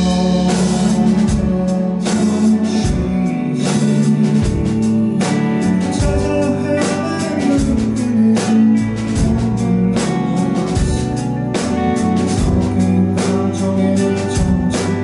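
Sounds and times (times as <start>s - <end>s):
electric guitar: 0.0s - 15.0s
live rock band playing: 0.0s - 15.0s.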